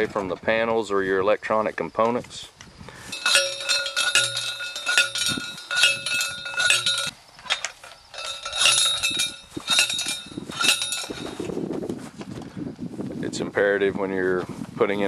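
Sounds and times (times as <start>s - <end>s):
metal rod ringing: 3.1s - 11.4s
post driver striking metal rod: 3.2s - 11.2s.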